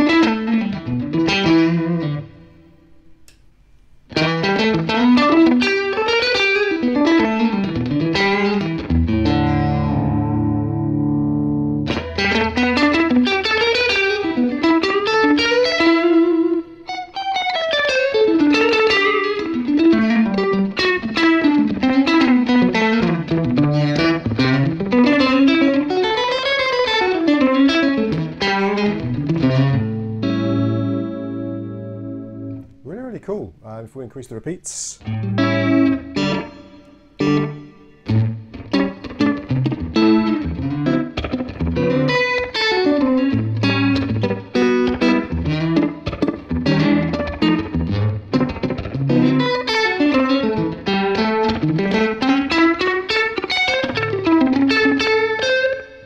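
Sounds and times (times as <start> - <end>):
electric guitar with echo: 0.0 - 56.0.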